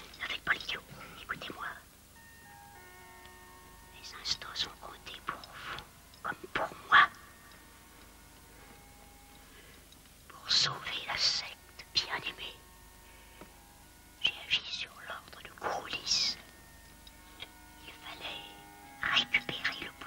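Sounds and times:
whispered voices: 0.0s - 1.8s, 4.0s - 7.2s, 14.2s - 16.4s, 17.4s - 20.0s.

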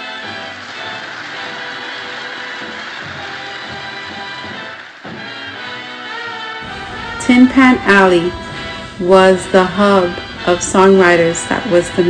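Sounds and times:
hissing wash of music: 0.0s - 12.0s
low beats: 6.6s - 12.0s.

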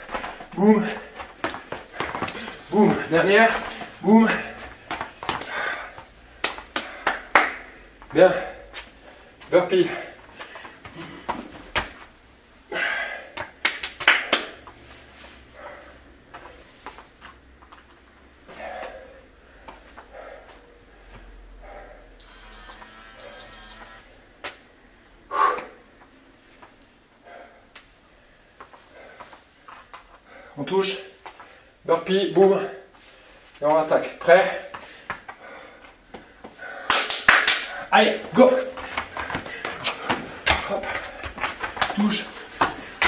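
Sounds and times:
man talking: 0.5s - 1.1s, 2.7s - 4.6s, 9.5s - 10.1s, 30.6s - 31.2s, 33.6s - 34.7s, 37.9s - 38.8s, 41.9s - 42.4s.

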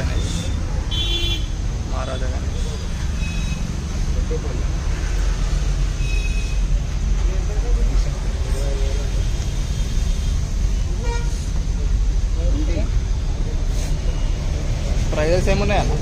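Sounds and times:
street traffic rumble: 0.0s - 16.0s.

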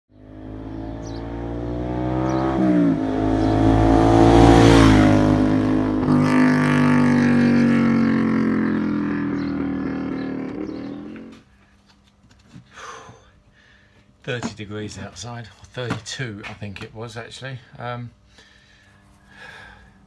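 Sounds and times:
vehicle engine revving: 0.1s - 11.4s.

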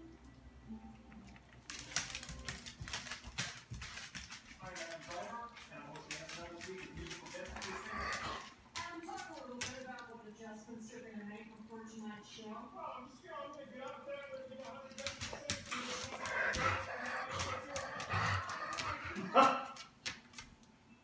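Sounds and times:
ferret crunching dry kibble: 1.0s - 10.4s, 13.7s - 20.6s.

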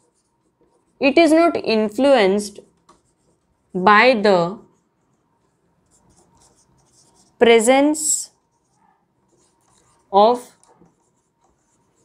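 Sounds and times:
marker pen on whiteboard: 0.0s - 12.0s.

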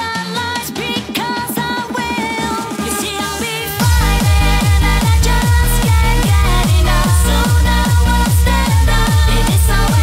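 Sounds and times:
synth lead chords: 2.0s - 10.0s
kick drum: 3.8s - 10.0s.

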